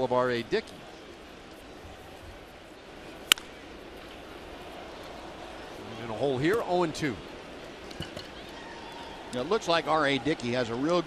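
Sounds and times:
crowd murmur: 0.7s - 11.0s.

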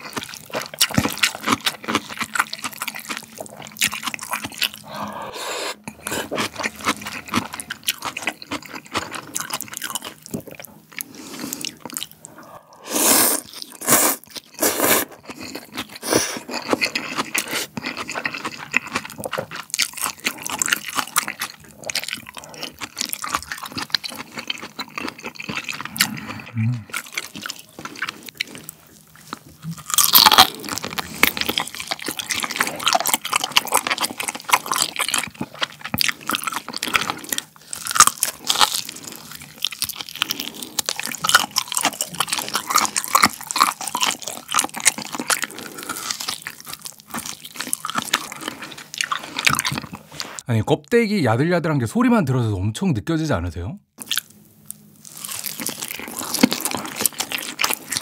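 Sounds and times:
wet chewing and biting: 0.0s - 5.1s, 5.8s - 12.4s, 13.2s - 50.4s, 54.0s - 58.0s
slurping soup: 4.6s - 7.9s, 11.0s - 19.5s
person humming mm: 26.0s - 27.0s.

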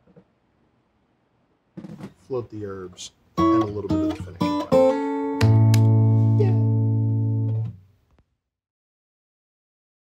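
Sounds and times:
music: 3.4s - 7.8s.

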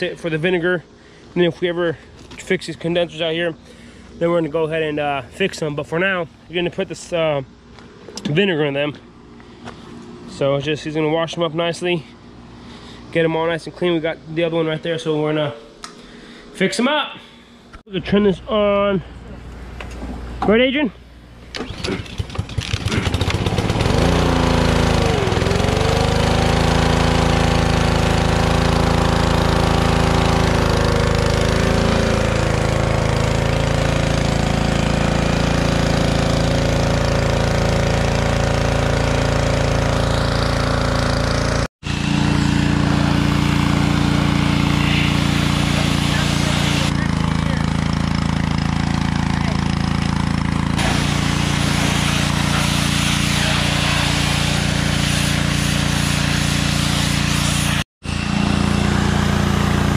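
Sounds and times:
pressure washer engine running: 21.6s - 59.9s.

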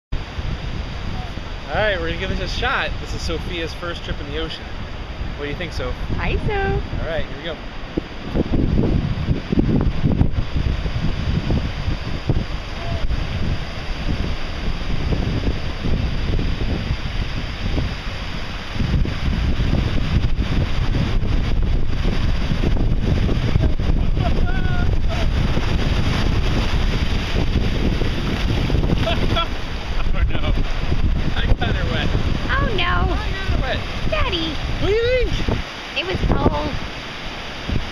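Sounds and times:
wind buffeting microphone: 0.1s - 37.9s
small ocean waves breaking: 0.2s - 37.9s.

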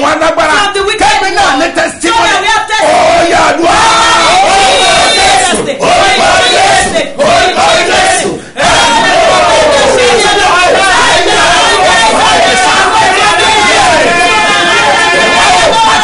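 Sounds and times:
woman praying aloud: 0.0s - 7.2s
man praying aloud: 0.0s - 16.0s.

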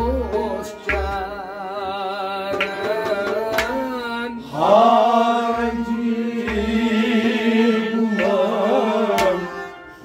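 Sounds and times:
harmonium: 0.0s - 10.0s
men singing: 0.0s - 10.0s.

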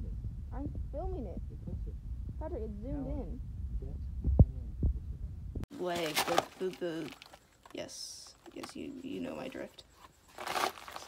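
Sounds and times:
low rumble: 0.0s - 5.7s.

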